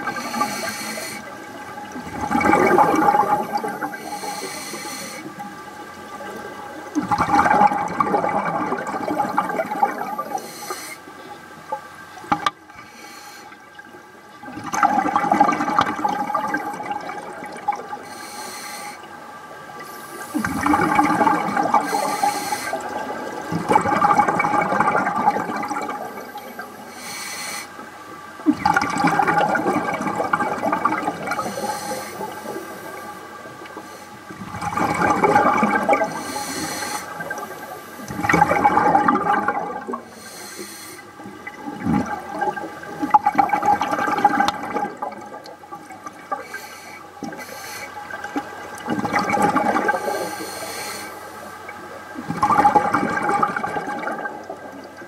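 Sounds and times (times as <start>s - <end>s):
diver breathing: 0.0s - 1.4s, 3.0s - 5.4s, 10.0s - 11.1s, 12.8s - 13.7s, 18.0s - 19.1s, 19.8s - 20.8s, 21.6s - 23.0s, 26.8s - 27.8s, 31.4s - 34.3s, 36.0s - 38.2s, 40.0s - 41.2s, 46.4s - 48.0s, 49.9s - 51.7s
underwater regulator bubbles gurgling: 0.0s - 55.0s.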